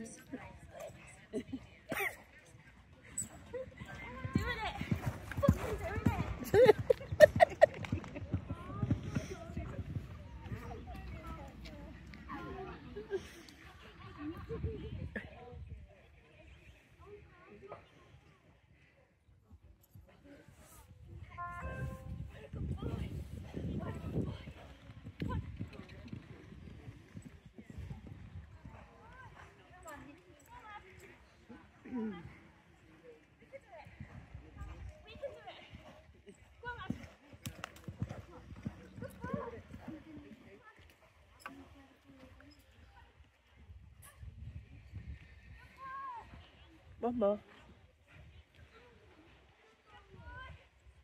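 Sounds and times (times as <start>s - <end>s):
horse hooves on sand: 0.0s - 14.8s, 19.9s - 43.5s
horse hooves thudding on sand: 3.4s - 13.0s.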